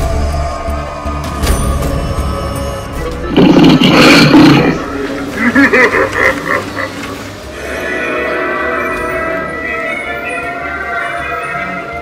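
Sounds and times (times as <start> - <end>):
monster roar: 3.2 - 6.9.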